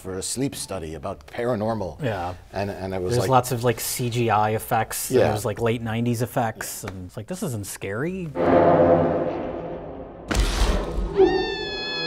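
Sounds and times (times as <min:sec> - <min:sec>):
sudden noisy crash: 0:08.4 - 0:11.3
long high cry: 0:11.2 - 0:12.0.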